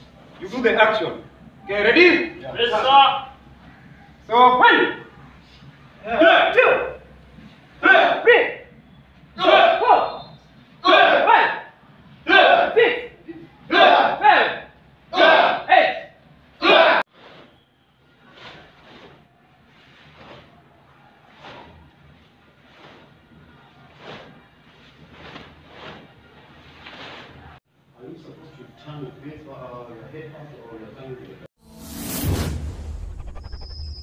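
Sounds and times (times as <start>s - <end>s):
group shouting in unison: 13.7s - 16.0s, 16.6s - 17.1s.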